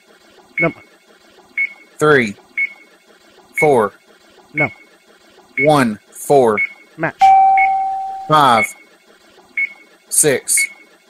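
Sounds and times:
countdown clock beeps: 0.6 - 0.8, 3.6 - 3.8, 5.6 - 5.9, 6.6 - 8.8.

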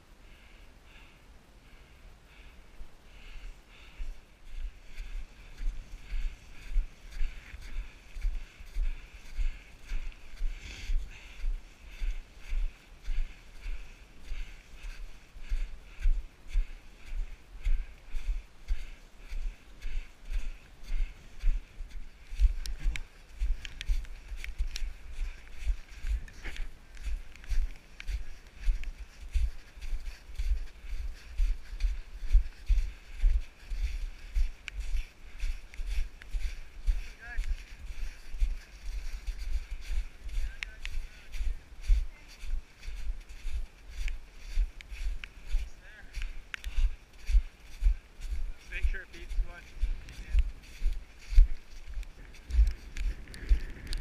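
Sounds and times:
footsteps on snow: 2.3 - 54.0
wind buffeting microphone: 49.2 - 54.0.

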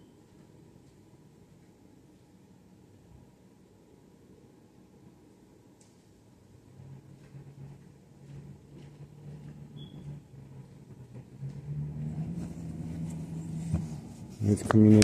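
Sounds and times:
vehicle engine rumble: 6.6 - 15.0.

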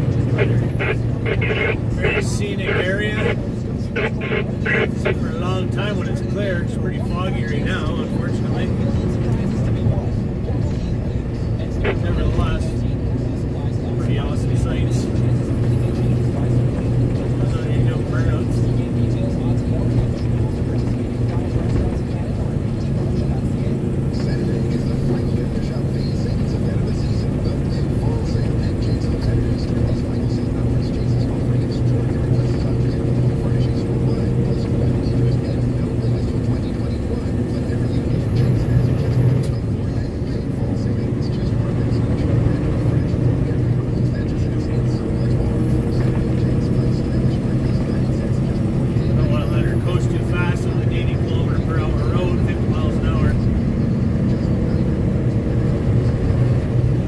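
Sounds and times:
faint indistinct voices: 0.0 - 57.0
truck engine and tyre drone: 0.0 - 57.0.

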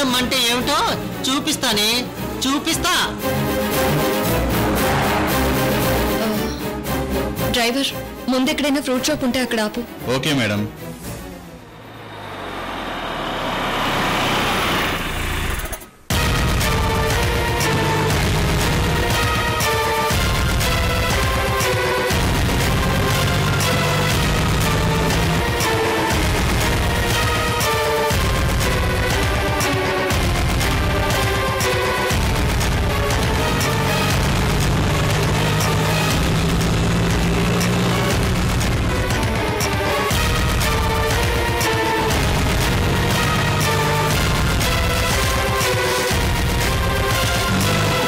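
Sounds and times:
car driving past: 3.3 - 7.4, 10.9 - 16.0
auto-rickshaw engine droning: 11.5 - 48.0.

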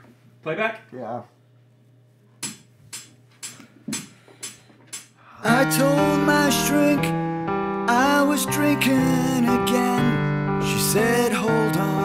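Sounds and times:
metronome clicks: 2.4 - 5.1.

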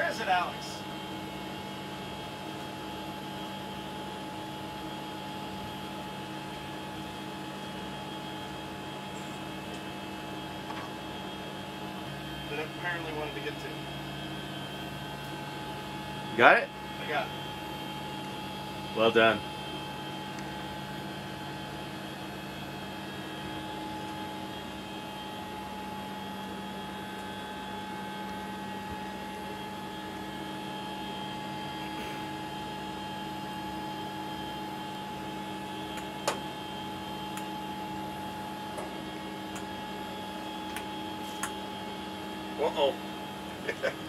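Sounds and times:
ventilation and equipment hum: 0.0 - 44.0.

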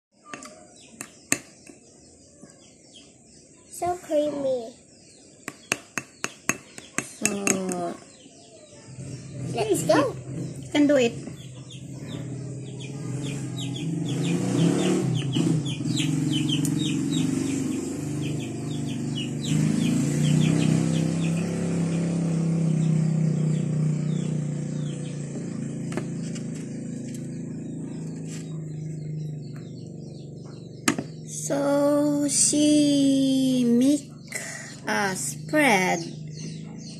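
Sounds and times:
bird chirping: 0.1 - 36.9.

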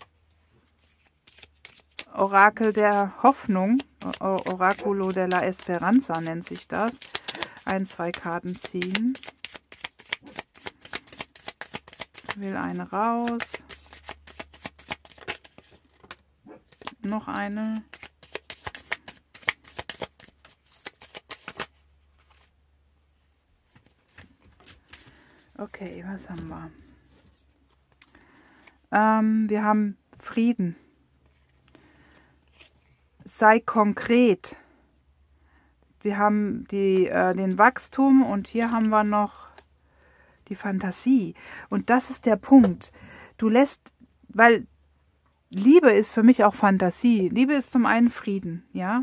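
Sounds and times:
cards being shuffled: 0.8 - 22.5, 23.6 - 28.8, 32.5 - 33.0, 38.6 - 39.6.

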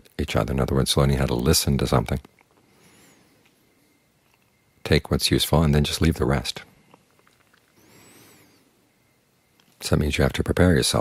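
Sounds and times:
man talking: 0.0 - 2.3, 4.8 - 6.7, 9.8 - 11.0.

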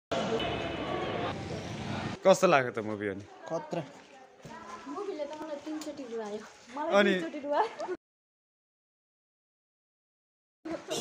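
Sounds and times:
busy indoor public space din: 0.1 - 8.0.

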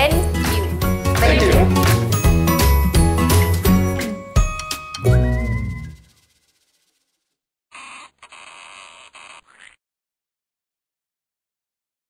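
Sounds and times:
tape peeling off surface: 6.0 - 9.8.

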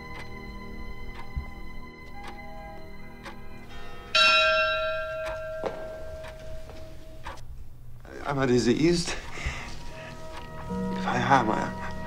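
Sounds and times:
soft ticks: 0.0 - 0.4, 1.0 - 3.8, 5.1 - 7.5, 9.7 - 10.8
sustained music chord: 0.0 - 7.2, 9.6 - 12.0
large bell ringing: 1.7 - 7.2, 9.9 - 12.0.

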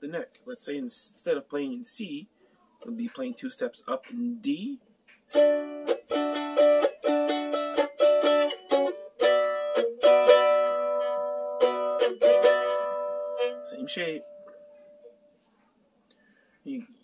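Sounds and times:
mandolin strumming chords: 5.3 - 15.2.

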